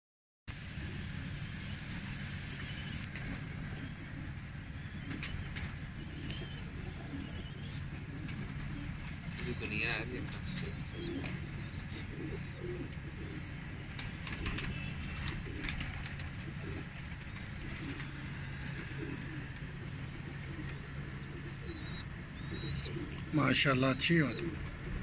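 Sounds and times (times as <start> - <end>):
steady low hum: 0.5 - 25.0
pigeons cooing: 0.6 - 25.0.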